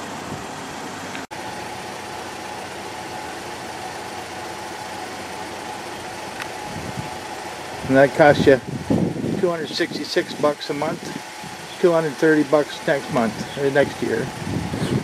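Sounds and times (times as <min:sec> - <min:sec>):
mechanical hum and hiss: 0:00.0 - 0:15.0.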